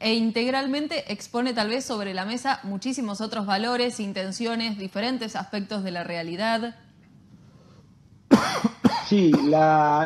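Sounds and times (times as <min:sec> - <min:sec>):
person coughing and clearing throat: 0:08.3 - 0:09.9.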